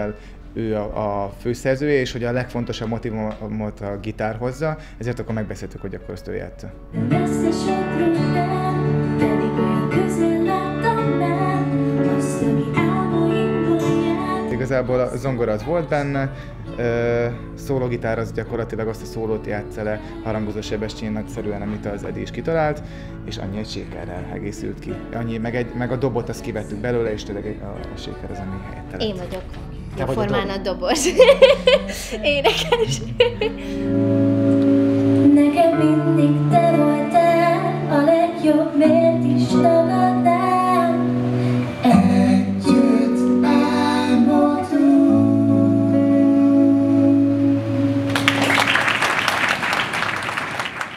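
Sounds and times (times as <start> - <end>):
acoustic guitar chords: 6.8 - 49.7
woman singing: 7.0 - 14.8, 19.0 - 22.0, 35.2 - 48.2.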